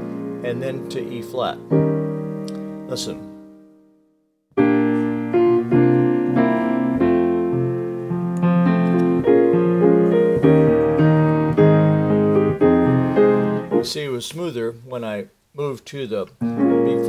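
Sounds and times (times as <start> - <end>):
piano chords: 0.0 - 14.2, 16.4 - 17.0.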